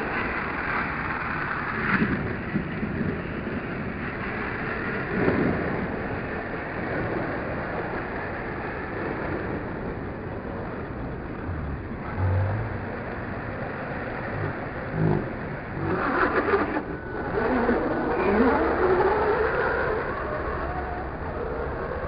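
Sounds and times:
radio-controlled car motor on dirt: 11.4s - 22.0s.

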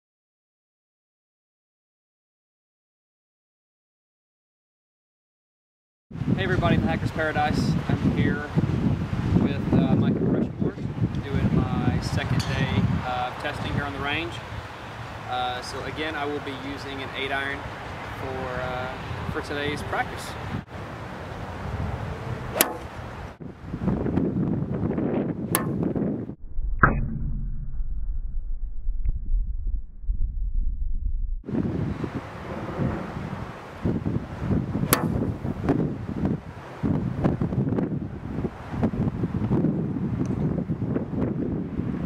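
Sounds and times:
wind buffeting microphone: 6.2s - 15.8s, 18.6s - 42.0s
golf club striking ball: 22.5s - 23.2s, 25.5s - 26.1s, 34.8s - 35.6s.

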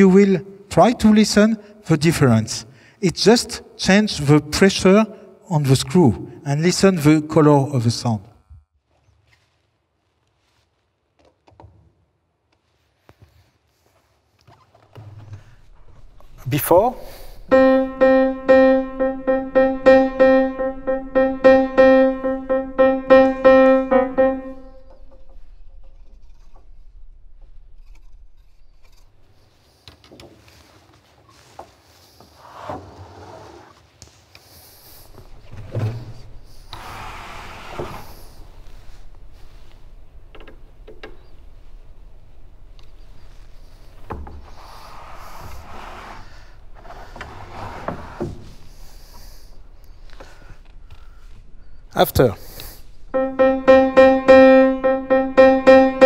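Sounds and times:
piano note struck: 17.5s - 25.3s, 53.2s - 56.0s.

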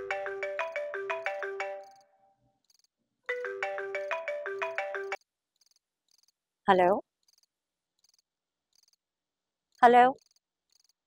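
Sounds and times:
faint cricket chirping: 5.6s - 6.4s, 7.2s - 9.0s, 10.2s - 11.0s.

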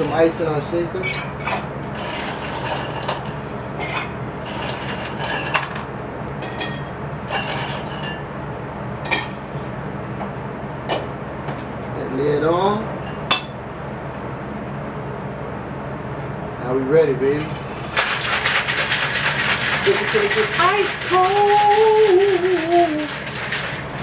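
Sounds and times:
ice cubes clinking into metal shaker: 17.8s - 24.0s.

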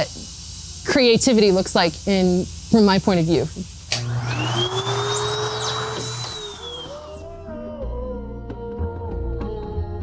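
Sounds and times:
music: 6.8s - 10.0s.

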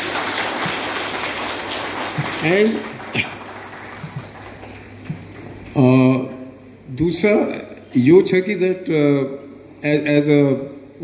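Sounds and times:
audience applauding: 0.0s - 4.9s.

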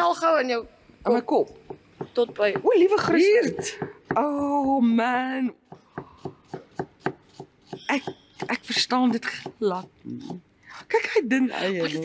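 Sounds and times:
knife chopping on plastic board: 5.7s - 10.4s.

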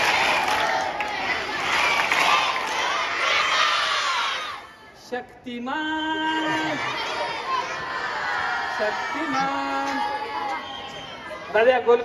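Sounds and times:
children cheering and shouting: 0.1s - 4.9s, 6.5s - 11.5s.

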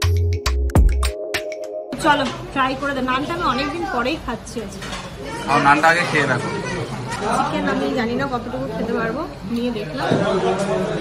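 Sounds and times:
background chatter: 2.0s - 11.0s.

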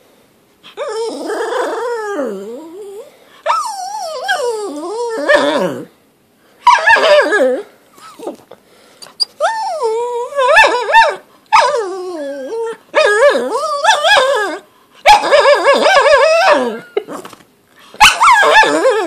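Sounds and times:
dog whining: 0.7s - 5.9s, 6.6s - 19.0s.

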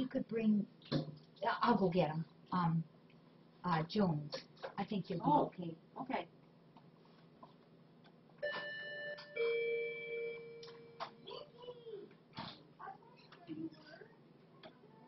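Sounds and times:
electronic two-note doorbell chime: 8.4s - 11.0s.

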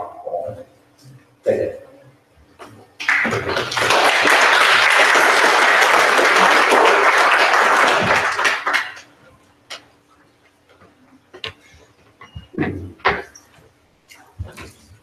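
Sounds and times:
audience applauding: 3.0s - 9.1s.

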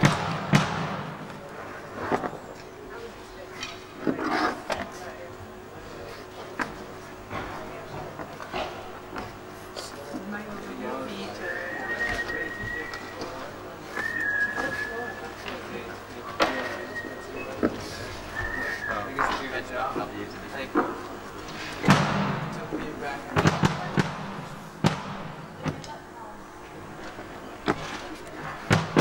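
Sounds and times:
drum hits: 0.0s - 1.3s
high whistle-like tone: 11.4s - 13.3s, 13.9s - 15.4s, 16.4s - 17.6s, 18.3s - 19.1s.

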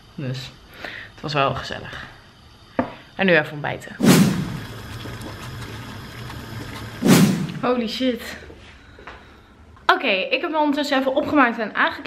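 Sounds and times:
water boiling in saucepan: 0.0s - 8.1s.

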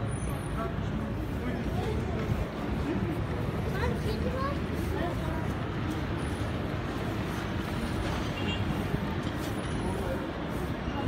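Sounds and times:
city traffic rumble: 0.0s - 11.0s
faint voices: 0.0s - 11.0s.

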